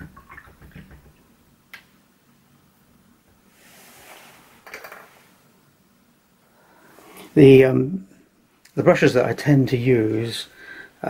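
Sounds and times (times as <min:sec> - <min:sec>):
cloth rustling: 0:03.5 - 0:05.4.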